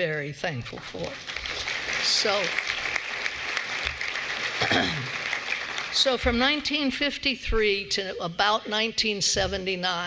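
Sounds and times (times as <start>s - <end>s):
audience applauding: 0.9s - 6.2s.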